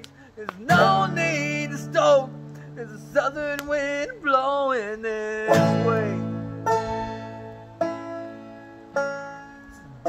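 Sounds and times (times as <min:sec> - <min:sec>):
banjo and acoustic guitar chords: 0:00.6 - 0:03.2, 0:05.2 - 0:10.0.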